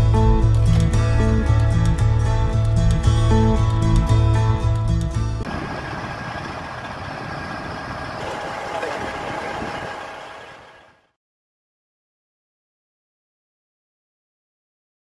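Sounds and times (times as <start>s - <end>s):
background music: 0.0s - 5.5s
diesel engine idling: 5.5s - 11.0s.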